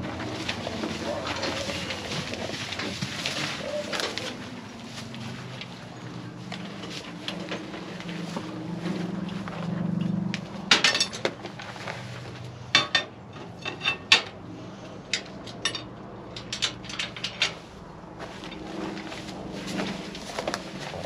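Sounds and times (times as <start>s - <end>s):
metal headgate clanking and rattling: 10.7s - 11.4s, 12.7s - 14.4s, 15.2s - 17.7s.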